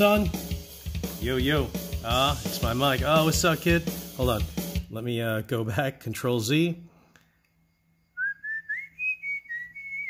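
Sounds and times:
person whistling: 8.2 - 10.0.

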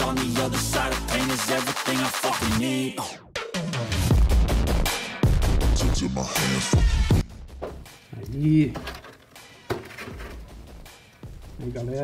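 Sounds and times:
faint background music: 7.6 - 12.0.

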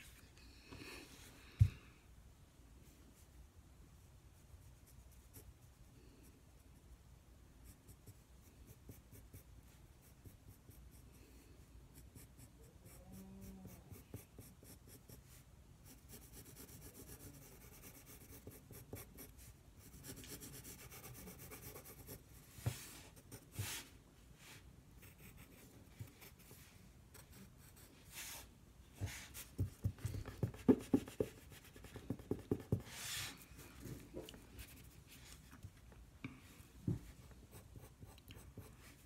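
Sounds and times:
pencil scratching on paper: 4.7 - 5.6, 11.9 - 23.9, 25.0 - 33.4, 37.5 - 39.0.

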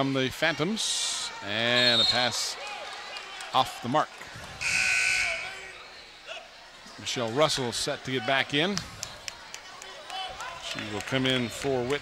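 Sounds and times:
scoreboard horn: 4.6 - 5.5.

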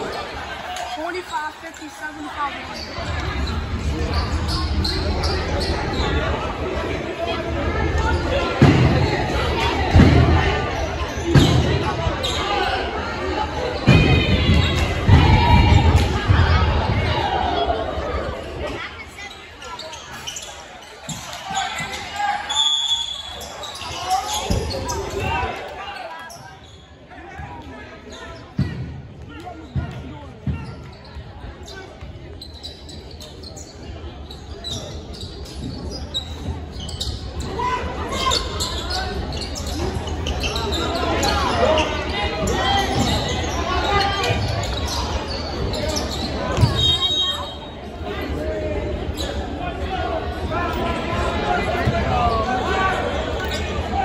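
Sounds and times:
spectators talking: 0.0 - 54.0.

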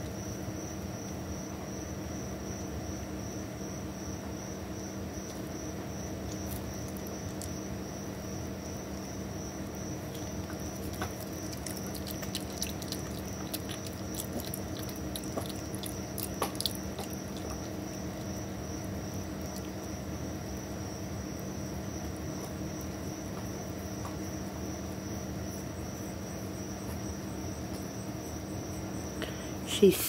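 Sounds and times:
steady background hum: 0.0 - 30.0
animal chewing clicks: 10.1 - 18.4, 19.2 - 20.0.

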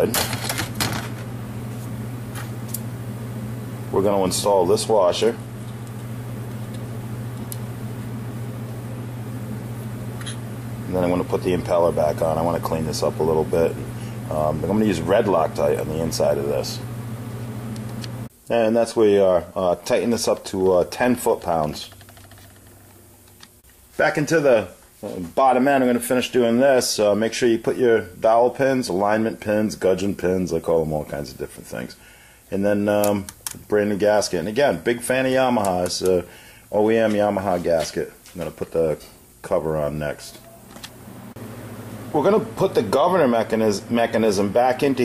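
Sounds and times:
steady low hum: 0.0 - 45.0
person speaking: 3.8 - 5.5, 10.7 - 16.9, 24.0 - 40.7, 42.0 - 45.0.

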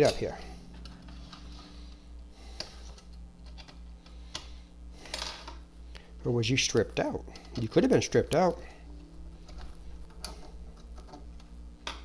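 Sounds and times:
faint low hum: 0.0 - 12.0
small parts clicking and tapping: 2.6 - 5.6.

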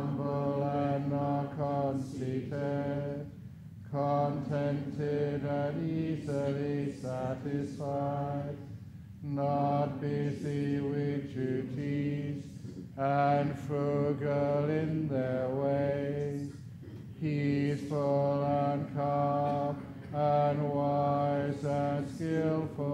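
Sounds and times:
man chanting in deep voice: 0.0 - 22.9.

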